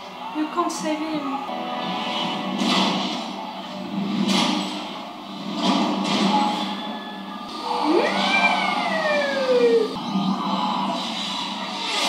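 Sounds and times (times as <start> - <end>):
pitched wail rising and falling: 7.7 - 10.0.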